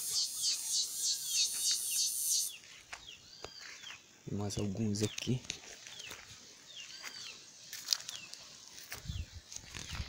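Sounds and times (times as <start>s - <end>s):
insects calling in high pulses: 0.0s - 2.6s.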